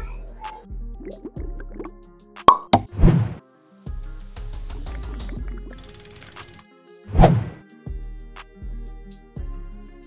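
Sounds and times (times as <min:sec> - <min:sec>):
background music: 0:00.0 - 0:10.0
sharp pops: 0:02.4 - 0:03.4.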